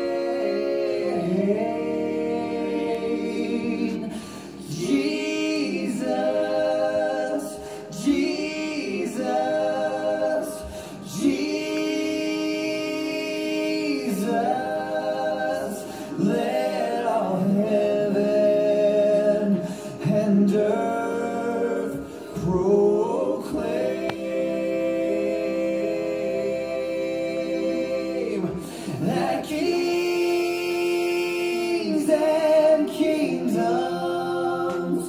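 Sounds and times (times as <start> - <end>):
voices singing in harmony: 0.0 - 35.0.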